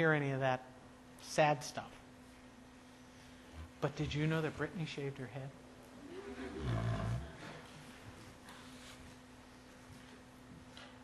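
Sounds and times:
audience laughing: 6.0s - 7.7s.

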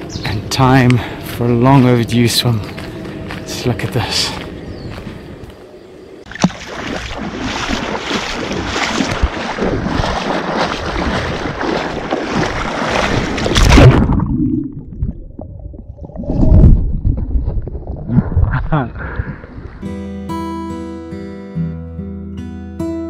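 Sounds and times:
water splashing and sloshing: 6.2s - 19.9s.

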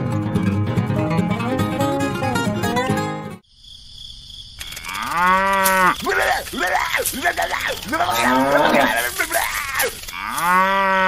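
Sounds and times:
cow mooing: 4.8s - 6.0s, 8.0s - 11.0s.

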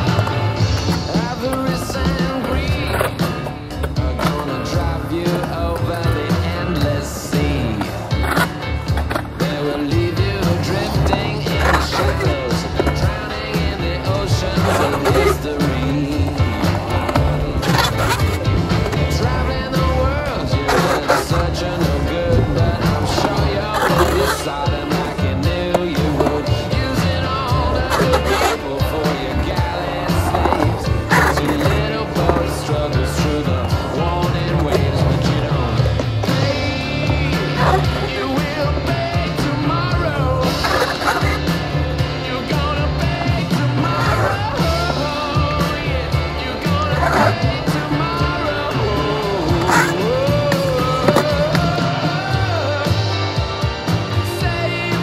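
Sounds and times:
music playing: 0.0s - 55.0s
skateboard wheels rolling and clacking: 0.0s - 55.0s.

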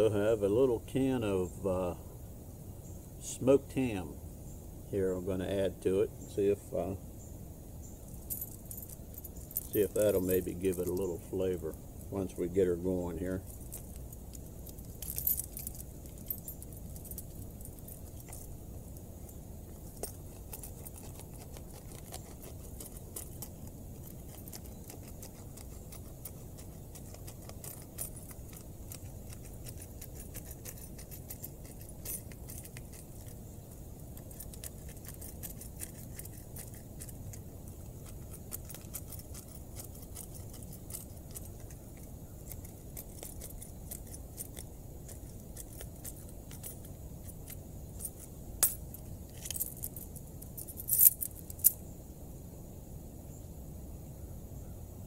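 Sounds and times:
sharp metallic clinks: 8.1s - 51.8s.

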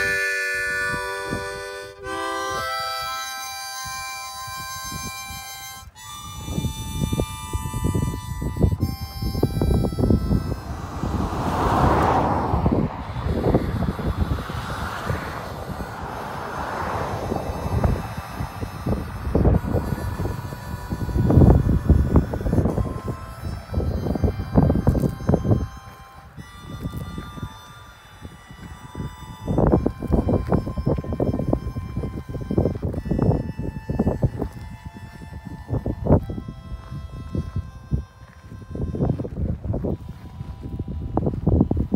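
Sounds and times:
harmonica playing held notes: 0.0s - 41.9s
wind rumbling on microphone: 0.0s - 41.9s.

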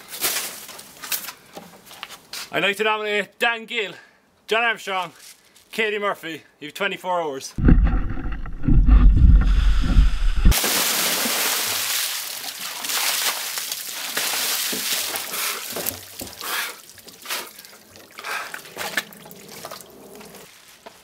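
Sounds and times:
water pouring and splashing: 8.5s - 20.5s
water dripping and trickling: 11.0s - 20.4s.

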